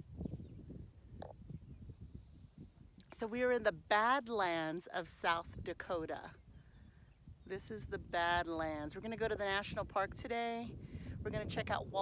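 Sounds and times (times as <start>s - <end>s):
crickets trilling: 0.0s - 12.0s
wind rumbling on microphone: 0.0s - 12.0s.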